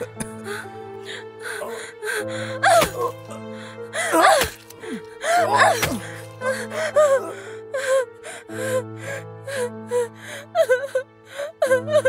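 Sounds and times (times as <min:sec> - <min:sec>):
background music: 0:00.0 - 0:12.0
woman sobbing: 0:00.0 - 0:12.0.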